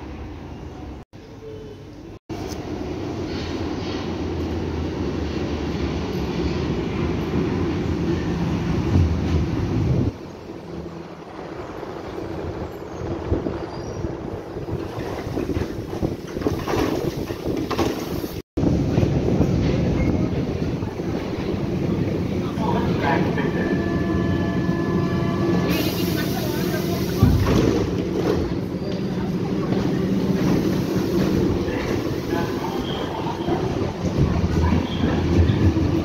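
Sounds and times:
train standing at platform: 0.0s - 36.0s
underground train rumbling: 0.0s - 36.0s.

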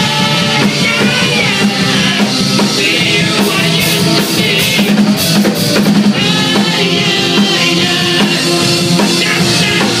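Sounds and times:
drum and cymbal hits: 0.0s - 10.0s
live punk rock band: 0.0s - 10.0s
man singing: 0.0s - 10.0s.

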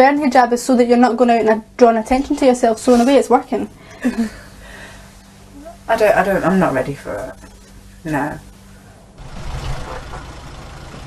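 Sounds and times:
car engine idling: 9.2s - 11.0s.

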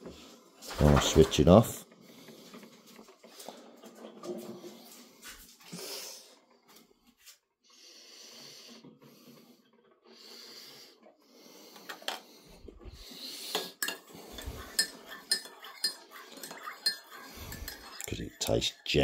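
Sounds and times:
spoon clinking against mug: 13.8s - 18.6s.

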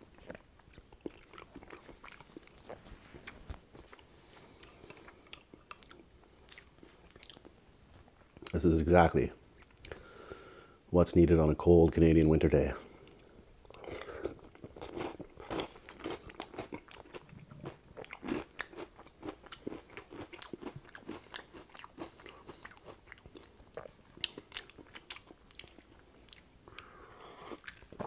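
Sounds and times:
chewing with crunches: 0.0s - 8.6s, 13.0s - 28.0s.

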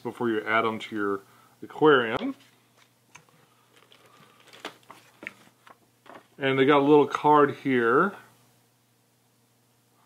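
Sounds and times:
plastic bag crinkling: 3.2s - 6.4s.

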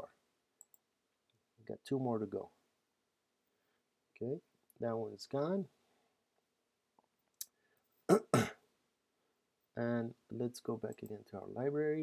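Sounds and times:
man clearing his throat: 8.1s - 8.6s
man speaking: 9.8s - 12.0s.

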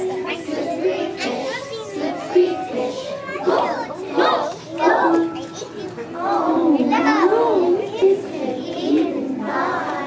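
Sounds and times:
children singing together: 0.0s - 5.4s, 6.1s - 10.0s.

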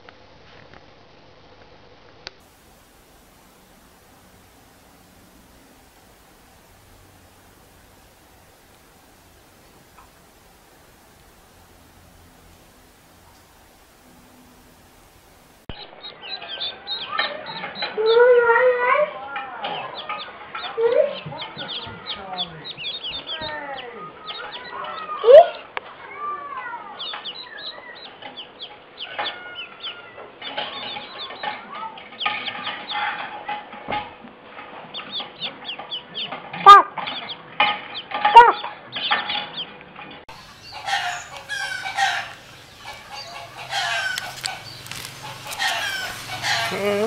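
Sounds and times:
ducklings peeping: 15.8s - 25.7s, 26.5s - 34.0s, 34.6s - 47.0s.

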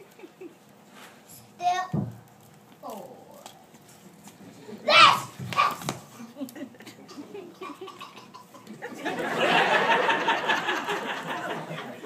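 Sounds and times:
child imitating dog bark: 4.8s - 5.9s.

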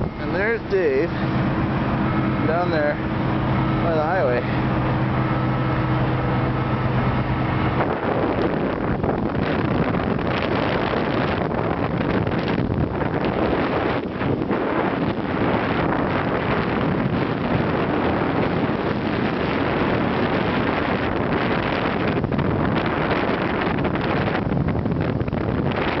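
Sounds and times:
aircraft engine drone: 0.0s - 26.0s
wind buffeting microphone: 0.0s - 26.0s.

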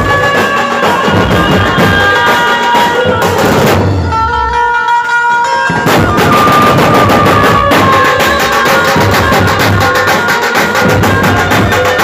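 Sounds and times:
large drums beating loudly: 0.0s - 4.7s, 5.6s - 12.0s
held melodic line: 4.2s - 12.0s.

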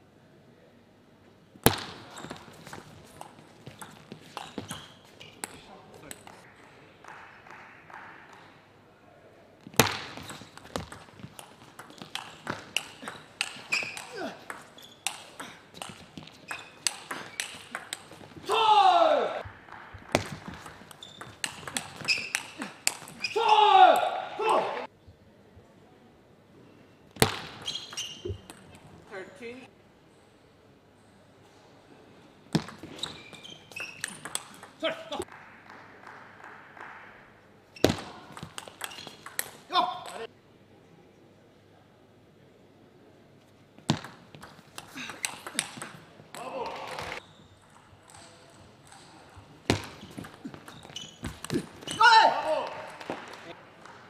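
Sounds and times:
player shouting: 18.4s - 19.4s, 23.3s - 24.9s, 51.9s - 53.0s.

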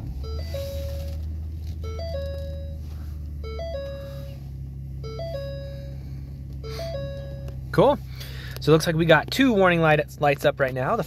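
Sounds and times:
car engine starting and idling: 0.0s - 11.0s
seatbelt reminder chime: 0.2s - 4.4s, 5.0s - 6.0s, 6.6s - 7.7s.

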